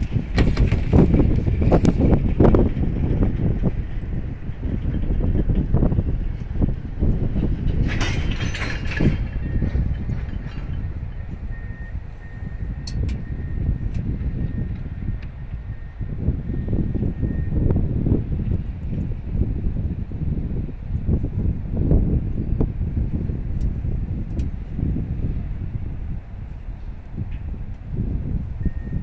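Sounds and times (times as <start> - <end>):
train cars clicking and clanking: 0.0 - 13.3
freight train rumbling past: 0.0 - 29.0.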